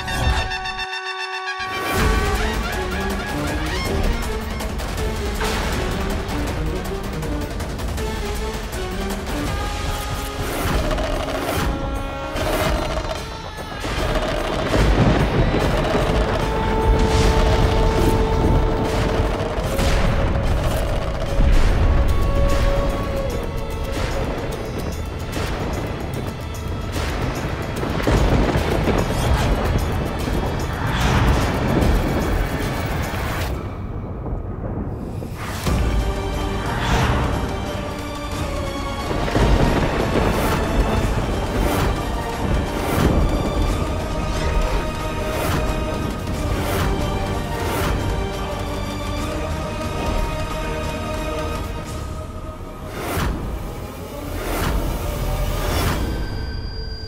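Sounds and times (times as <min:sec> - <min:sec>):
dramatic orchestral score: 0:00.0 - 0:57.0.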